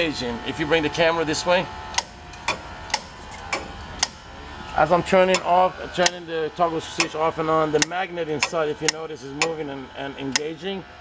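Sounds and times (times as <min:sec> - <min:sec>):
switch and pump clutch clicks: 0:01.9 - 0:04.2, 0:05.2 - 0:06.2, 0:07.0 - 0:07.2, 0:07.8 - 0:09.6, 0:10.3 - 0:10.5.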